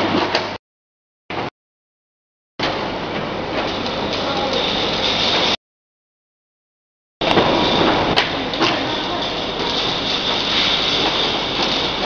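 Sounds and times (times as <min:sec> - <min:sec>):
machinery noise with electrical hum: 0:00.0 - 0:00.6, 0:02.6 - 0:05.6, 0:07.2 - 0:12.0.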